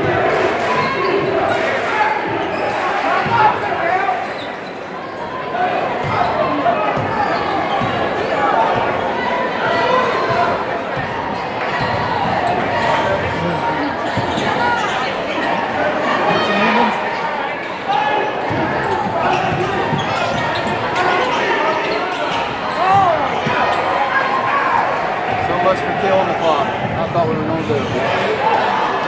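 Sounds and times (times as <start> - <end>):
crowd chatter in gym: 0.0 - 29.0.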